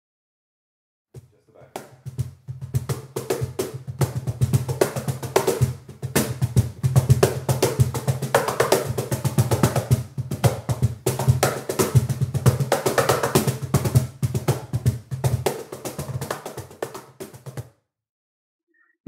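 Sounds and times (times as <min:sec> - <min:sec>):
cajon played by hand: 0:01.2 - 0:17.7.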